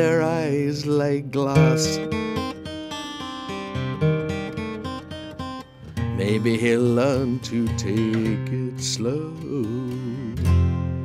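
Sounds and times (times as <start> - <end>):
person singing: 0.0 - 2.8, 6.0 - 11.0
acoustic guitar picking: 0.0 - 11.0.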